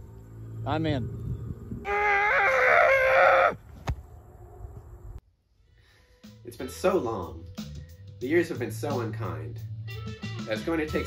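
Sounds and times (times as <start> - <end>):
rooster crowing: 1.9 - 3.6.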